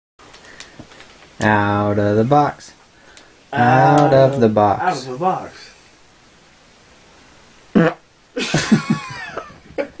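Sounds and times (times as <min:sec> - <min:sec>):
people laughing: 0:08.4 - 0:10.0.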